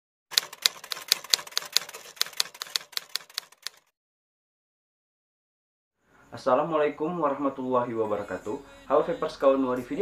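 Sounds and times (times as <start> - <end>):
typewriter keystroke clicks: 0.3 - 3.9.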